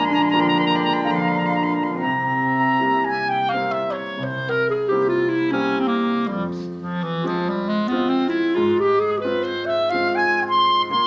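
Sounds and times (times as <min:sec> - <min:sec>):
clarinet playing legato melody: 0:00.0 - 0:11.0
low accompaniment: 0:00.0 - 0:11.0.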